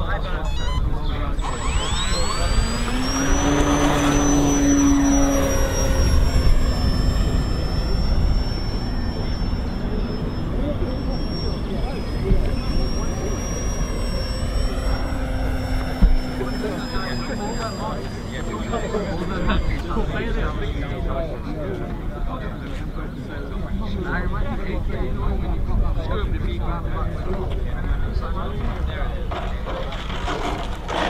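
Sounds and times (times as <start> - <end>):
model aeroplane electric motor whine: 0.0 - 25.4.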